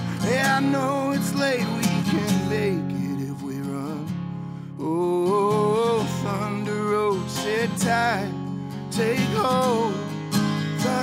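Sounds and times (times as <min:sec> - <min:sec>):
acoustic guitar strumming: 0:00.0 - 0:11.0
man singing: 0:00.0 - 0:11.0.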